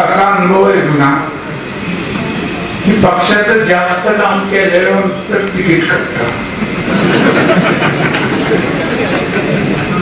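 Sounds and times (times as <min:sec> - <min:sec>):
man speaking over loudspeakers: 0:00.0 - 0:01.4, 0:02.8 - 0:06.4.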